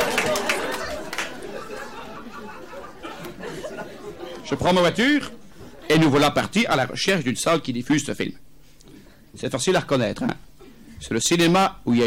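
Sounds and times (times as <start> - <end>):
scattered clapping: 0.0 - 1.6
audience laughing: 0.0 - 6.2.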